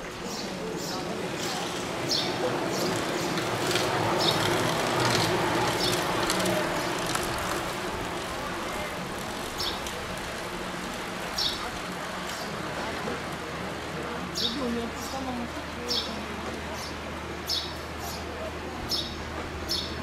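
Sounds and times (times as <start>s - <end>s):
indistinct voices: 0.0s - 17.2s
bicycles whirring past: 0.1s - 18.5s.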